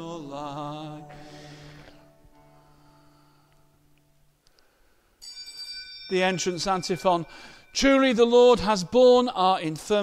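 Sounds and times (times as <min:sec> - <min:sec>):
hymn chord: 0:00.0 - 0:04.3, 0:05.3 - 0:08.8.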